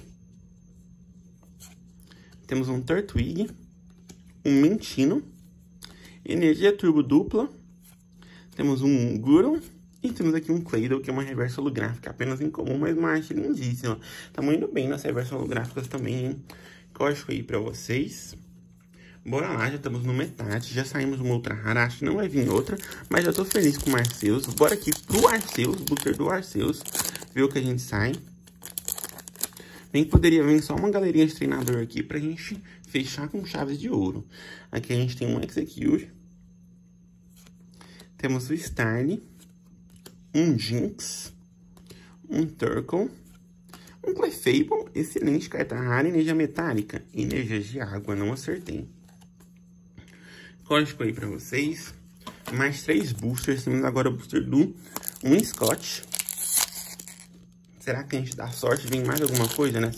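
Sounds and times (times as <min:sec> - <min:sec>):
foil wrapper crinkling and tearing: 0:22.2 - 0:29.8, 0:54.8 - 0:59.9.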